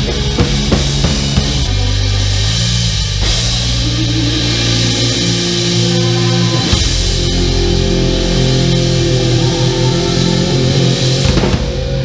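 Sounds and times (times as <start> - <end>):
electric bass sustained low notes: 0.0 - 12.0
live band playing: 0.0 - 12.0.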